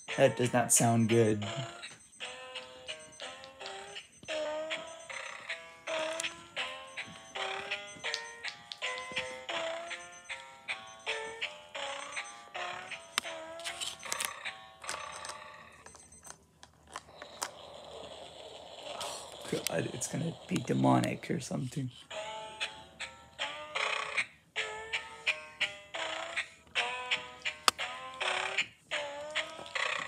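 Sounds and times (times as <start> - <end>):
electronic tune from toy book: 0.0 - 16.4, 19.0 - 21.5, 22.1 - 30.0.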